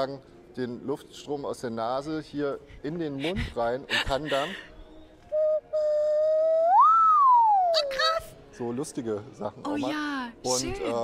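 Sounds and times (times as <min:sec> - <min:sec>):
nose flute whistle-like note: 0:05.3 - 0:07.8.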